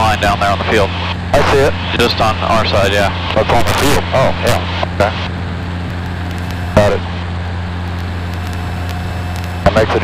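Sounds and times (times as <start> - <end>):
airplane engine cabin drone: 0.0 - 10.0.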